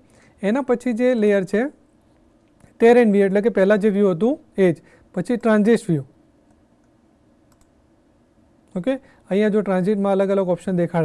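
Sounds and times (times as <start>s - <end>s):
computer mouse clicks: 6.4s - 7.8s.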